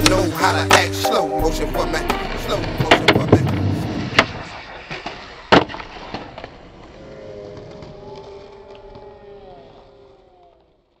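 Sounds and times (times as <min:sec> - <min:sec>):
skateboard wheels rolling on asphalt: 0:00.0 - 0:11.0.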